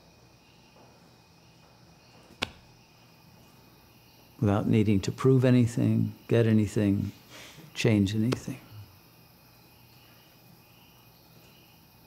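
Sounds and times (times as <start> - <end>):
faint insect sound: 0.0 - 12.0.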